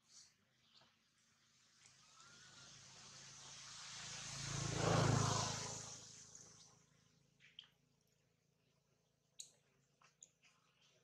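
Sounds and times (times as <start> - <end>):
motor vehicle passing by: 2.0 - 7.3.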